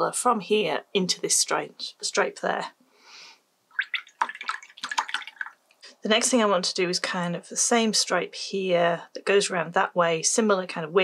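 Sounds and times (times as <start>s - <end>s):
small splashes and clicks: 3.7s - 5.8s.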